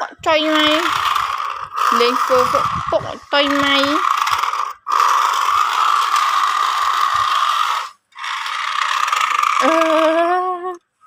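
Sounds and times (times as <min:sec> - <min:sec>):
toy car motor and gears whirring: 0:00.0 - 0:10.8.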